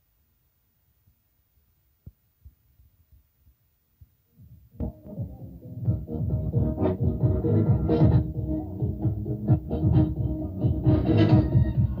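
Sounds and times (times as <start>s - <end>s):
faint low thumps: 2.0s - 12.0s.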